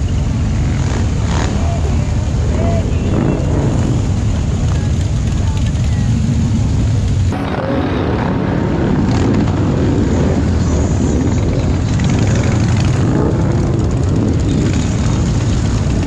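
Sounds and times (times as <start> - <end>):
motorcycles rumbling past: 0.0 - 16.0.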